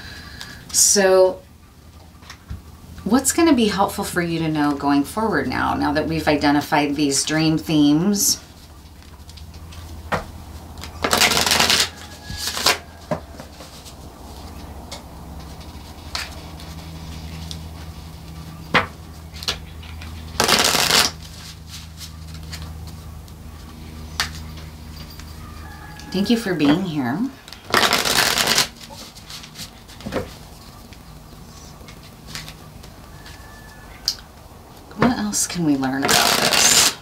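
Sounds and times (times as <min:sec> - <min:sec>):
cards riffling: 0:10.8 - 0:12.8, 0:19.4 - 0:22.8, 0:27.4 - 0:30.1, 0:36.1 - 0:37.0.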